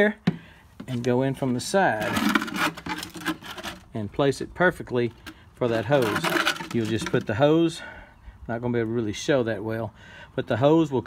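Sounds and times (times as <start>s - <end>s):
plastic can scraping: 0.3s - 4.0s, 5.1s - 7.4s.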